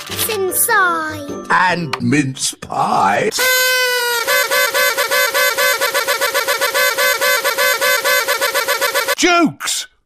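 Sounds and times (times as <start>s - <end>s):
party blower tooting: 3.4s - 9.3s.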